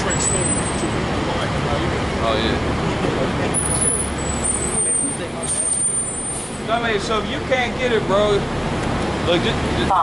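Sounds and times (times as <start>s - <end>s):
bus engine running: 0.0s - 10.0s
traffic rumble: 0.0s - 10.0s.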